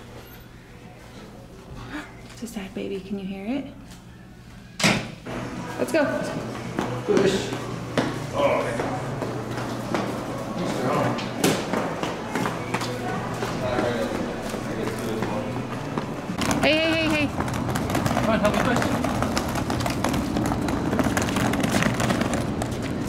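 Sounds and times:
footsteps: 5.5s - 23.0s
suitcase wheels on tiled floor: 5.7s - 23.0s.

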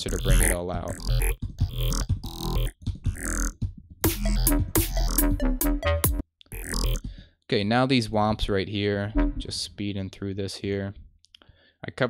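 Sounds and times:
deep sub bass: 0.0s - 3.5s, 9.1s - 9.6s
choppy stuttering synth bass: 0.0s - 7.1s.

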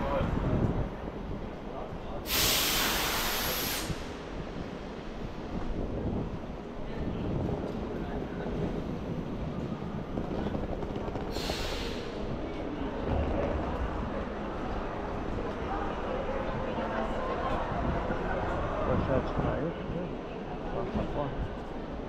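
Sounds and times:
low station rumble: 0.0s - 22.0s
compressed air hissing from train: 2.2s - 4.5s, 11.3s - 12.4s.

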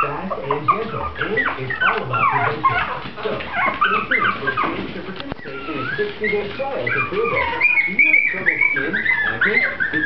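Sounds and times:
puppies yipping and whimpering: 0.0s - 10.0s.

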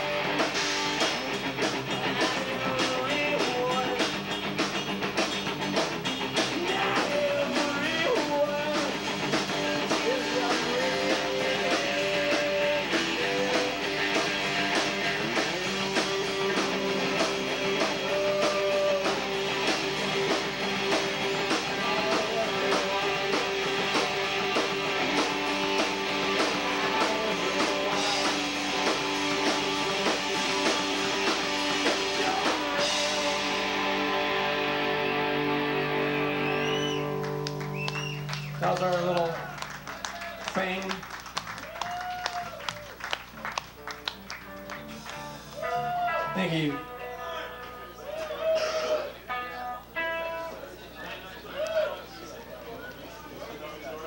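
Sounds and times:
punk rock band playing: 0.0s - 51.4s
lead vocal singing: 1.9s - 4.1s, 6.4s - 19.7s, 21.4s - 29.2s, 30.6s - 34.2s.

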